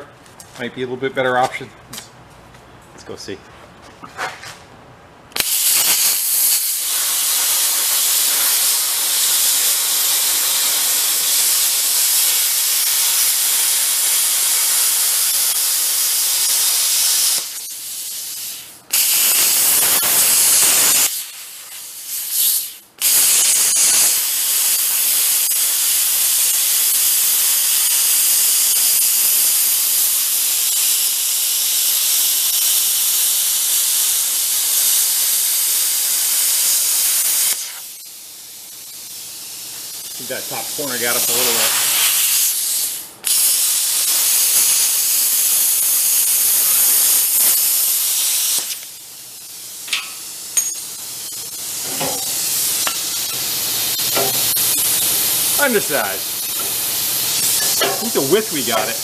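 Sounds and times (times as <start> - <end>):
plasma cutter hissing: 5.4 - 59.0.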